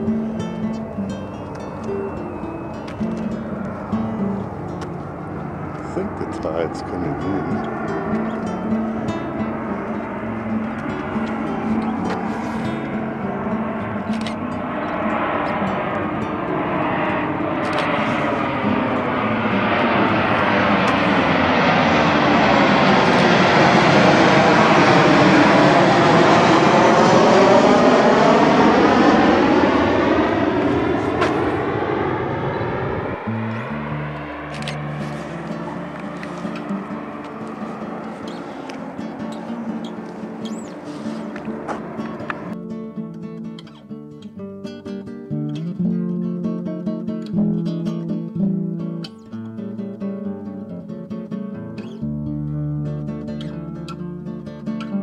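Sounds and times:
jet airplane passing overhead: 0.0s - 43.8s
plucked-string background music: 40.9s - 55.0s.

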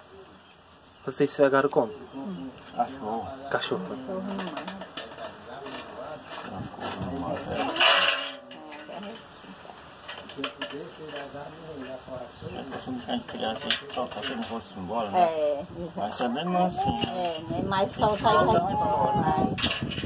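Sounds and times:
people talking indistinctly: 1.0s - 20.0s.

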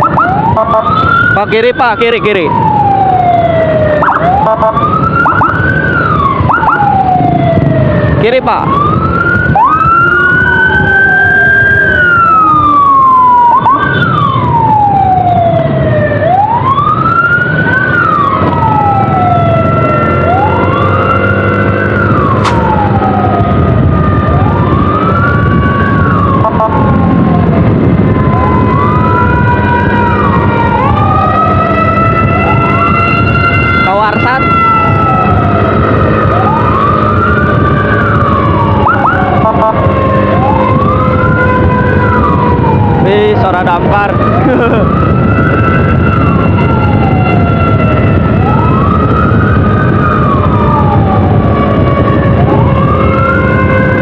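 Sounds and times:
electronic sirens wailing: 0.0s - 54.0s
road rumble: 0.0s - 54.0s.

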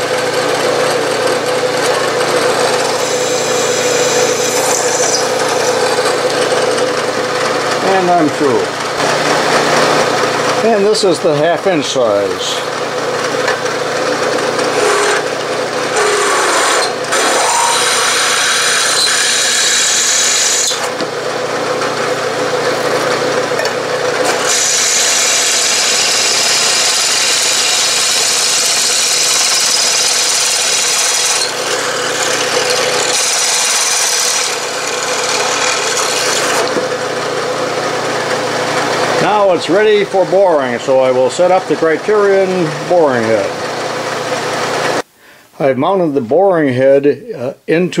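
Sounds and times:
milling machine humming: 0.0s - 45.0s
drill cutting into metal: 0.9s - 6.9s, 14.6s - 21.1s, 24.2s - 36.9s.

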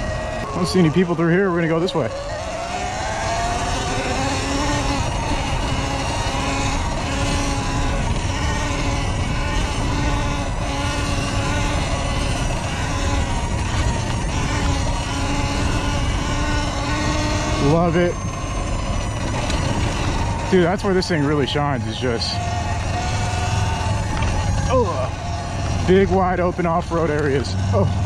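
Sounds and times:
electric motor whining: 0.0s - 28.0s
low rumble of wind and tyres: 0.0s - 28.0s.

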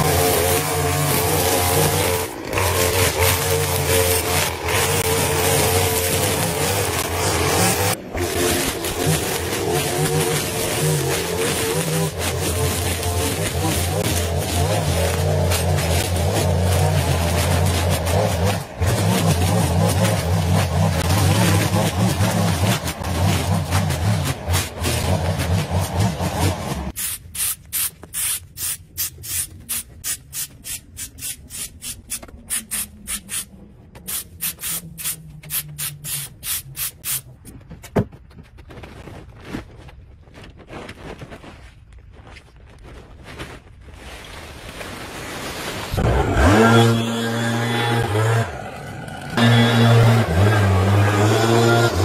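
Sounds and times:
string trimmer cutting grass: 0.0s - 27.0s, 45.8s - 52.0s
short scraping strokes: 0.1s - 37.4s.

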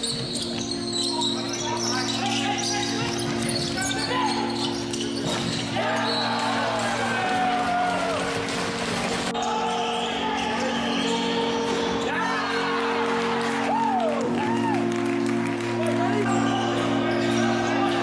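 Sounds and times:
shoes squeaking on floor: 0.0s - 6.7s, 9.3s - 12.7s
players shouting: 5.6s - 8.3s, 9.3s - 14.9s.

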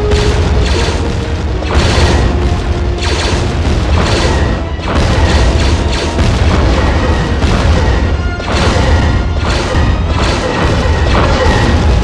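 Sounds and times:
background music: 0.0s - 12.0s
booming blasts: 0.0s - 12.0s
low rumble: 0.0s - 12.0s.

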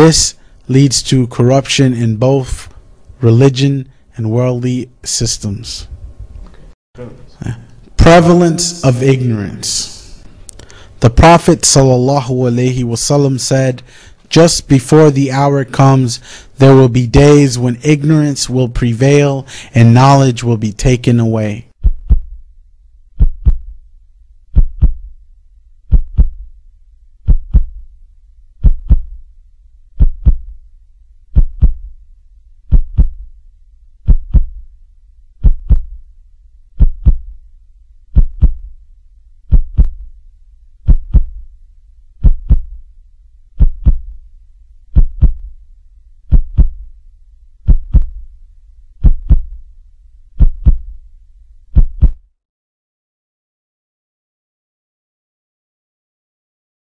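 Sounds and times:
deep double heartbeat thump: 21.8s - 22.5s, 23.1s - 23.9s, 24.5s - 25.2s, 25.9s - 26.6s, 27.2s - 27.9s, 28.6s - 29.3s, 30.0s - 30.7s, 31.3s - 32.0s, 32.7s - 33.4s, 34.0s - 34.8s, 35.4s - 36.1s, 36.8s - 37.4s, 38.1s - 38.8s, 39.5s - 40.2s, 40.8s - 41.6s, 42.2s - 42.9s, 43.6s - 44.3s, 44.9s - 45.6s, 46.3s - 47.0s, 47.6s - 48.4s, 49.0s - 49.7s, 50.4s - 51.1s, 51.7s - 52.3s.

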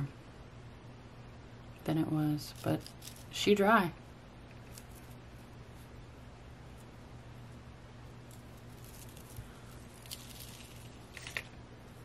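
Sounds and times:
low steady hum: 0.0s - 12.0s
fingers scraping silica crystals: 8.2s - 11.5s.

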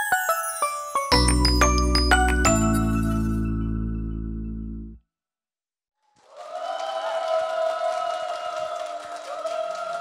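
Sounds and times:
music: 0.0s - 5.0s
studio audience applauding: 6.0s - 10.0s.

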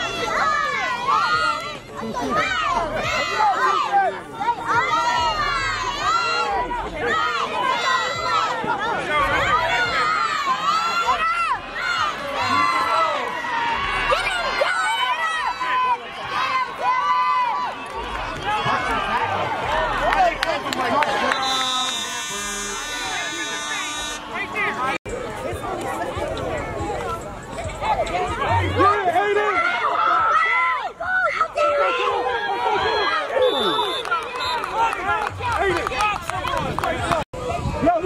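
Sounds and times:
spectators shouting and cheering: 0.0s - 38.0s
buzzing tone: 21.4s - 24.5s.

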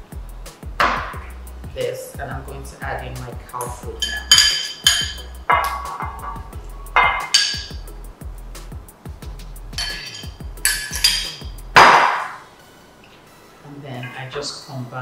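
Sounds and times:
background music with bass line: 0.0s - 12.6s
glass bowl clinking against pot: 3.6s - 7.8s, 9.8s - 12.0s.

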